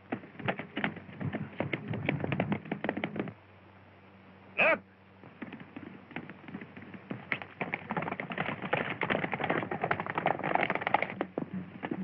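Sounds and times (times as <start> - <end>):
horse hooves galloping: 0.0 - 3.4, 5.2 - 12.0.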